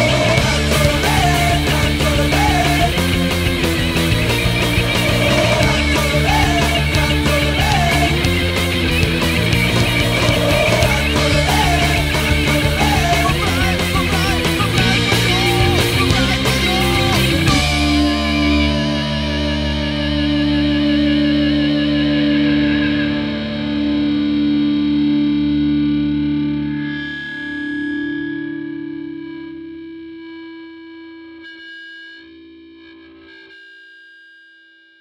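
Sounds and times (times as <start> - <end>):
distorted electric guitar chord: 0.0 - 33.8.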